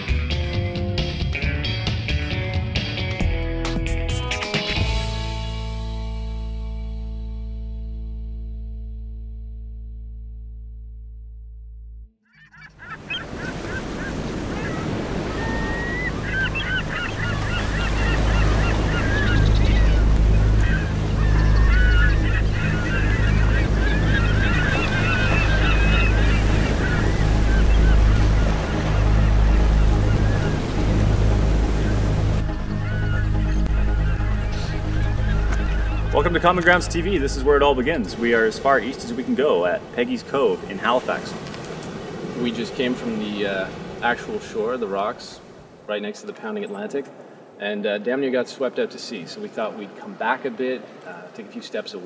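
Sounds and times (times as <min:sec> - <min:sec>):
birds squawking: 0:12.2 - 0:45.8
surf breaking on rocks: 0:34.7 - 0:45.9.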